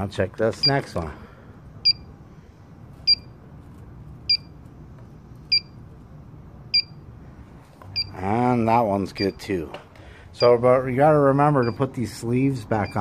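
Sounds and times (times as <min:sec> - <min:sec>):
gas detector beeping: 0:00.6 - 0:00.9, 0:01.8 - 0:02.1, 0:03.1 - 0:03.4, 0:04.3 - 0:04.5, 0:05.5 - 0:05.8, 0:06.7 - 0:07.0, 0:08.0 - 0:08.2, 0:09.1 - 0:09.5, 0:10.3 - 0:10.8, 0:11.5 - 0:12.0, 0:12.7 - 0:13.0.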